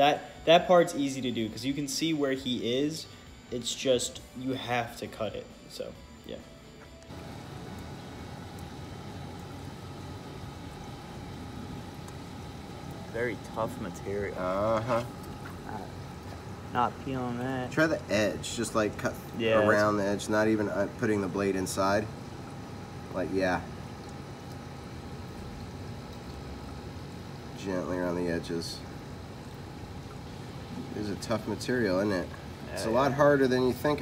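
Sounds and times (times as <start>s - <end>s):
aquarium pumps humming: 0.0s - 34.0s
faint steady whines: 0.0s - 34.0s.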